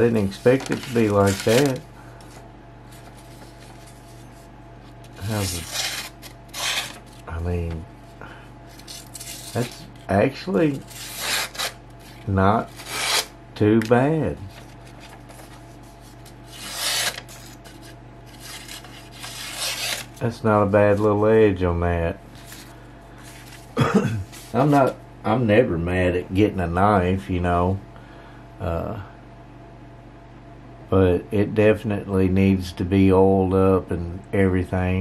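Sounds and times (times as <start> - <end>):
faint steady hum: 0.0 - 35.0
knife slicing paper: 0.2 - 1.8, 5.2 - 7.3, 10.7 - 13.3, 14.6 - 20.2.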